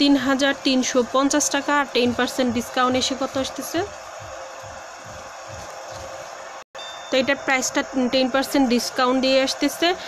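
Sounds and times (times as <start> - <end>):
room noise hiss: 0.0 - 10.0.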